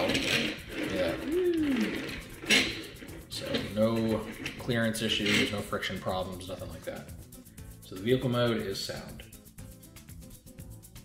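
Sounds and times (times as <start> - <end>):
toy car rolling on wooden table: 0.0 - 6.0.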